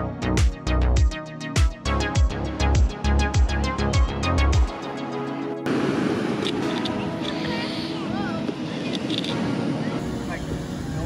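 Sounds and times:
electronic background music: 0:00.0 - 0:11.0
surf on the beach: 0:05.7 - 0:11.0.

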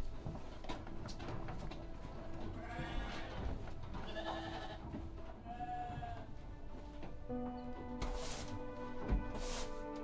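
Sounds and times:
sheep bleating: 0:02.6 - 0:06.3.

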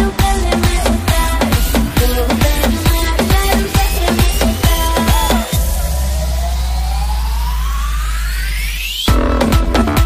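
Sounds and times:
synthesizer riser sweeping upward: 0:01.5 - 0:09.9.

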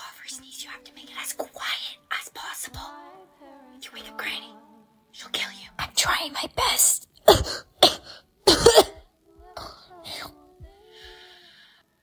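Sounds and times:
woman whispering: 0:00.0 - 0:02.7, 0:05.2 - 0:07.1.

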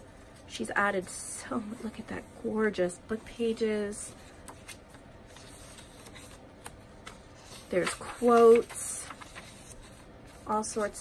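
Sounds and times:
paper pages rustling: 0:03.7 - 0:11.0.

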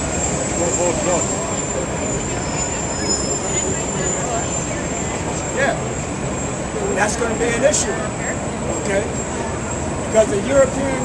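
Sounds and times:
bus running close by: 0:00.0 - 0:11.0
city street traffic: 0:00.0 - 0:11.0.

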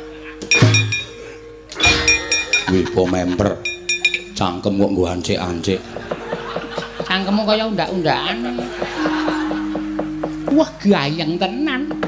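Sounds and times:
sustained gamelan tones: 0:00.0 - 0:12.0
sharp metallic clangs: 0:00.4 - 0:05.0.

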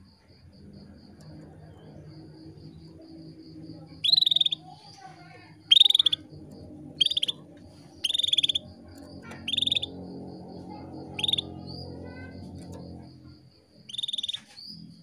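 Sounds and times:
canary trilled calls: 0:04.0 - 0:04.9, 0:05.6 - 0:06.3, 0:07.0 - 0:10.0, 0:11.0 - 0:12.0, 0:13.9 - 0:14.7.

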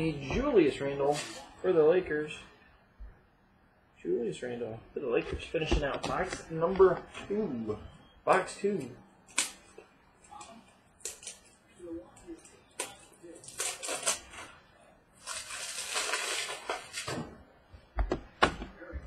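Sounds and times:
cards and packaging rustling: 0:12.3 - 0:14.6, 0:15.2 - 0:17.2.

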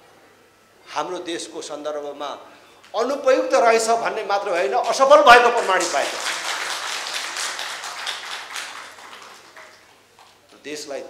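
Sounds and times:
audience applause: 0:04.8 - 0:10.0.

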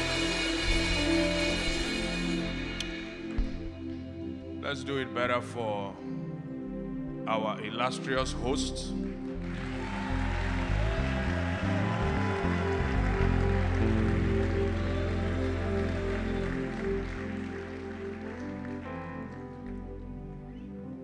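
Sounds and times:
background music: 0:00.0 - 0:21.0
congregation clapping: 0:09.1 - 0:20.1.

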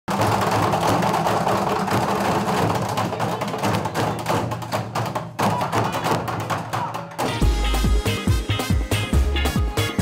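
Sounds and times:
group drumming on plastic barrels: 0:00.1 - 0:09.0.

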